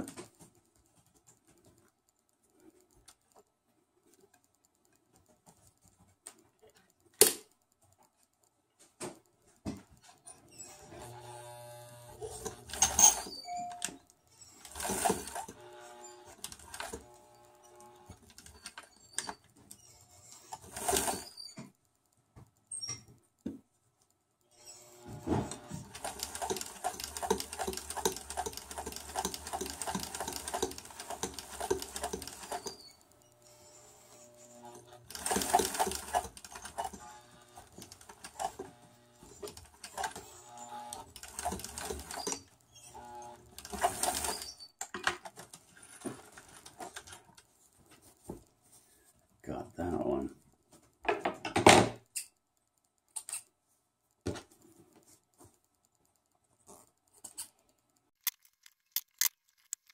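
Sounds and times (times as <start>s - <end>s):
sewing machine stitching: 10.3s - 21.6s, 24.6s - 47.2s.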